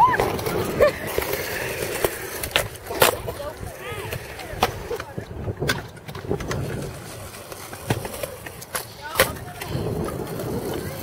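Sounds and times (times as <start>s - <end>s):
skateboard clacks: 0.0s - 11.0s
skateboard wheels rumbling on concrete: 0.0s - 11.0s.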